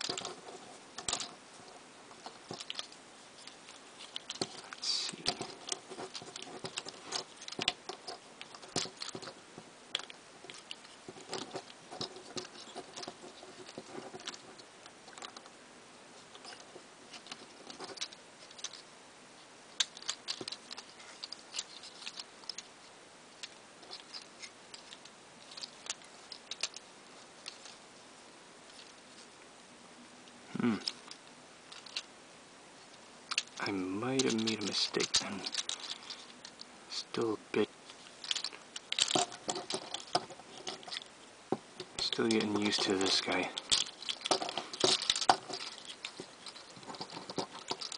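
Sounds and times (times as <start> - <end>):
plastic toy parts clicking: 0.0 - 1.4, 2.1 - 15.5, 16.3 - 18.8, 19.8 - 22.7, 23.4 - 26.8, 27.4 - 27.8, 30.8 - 32.1, 33.3 - 36.7, 37.9 - 41.1, 41.8 - 47.9.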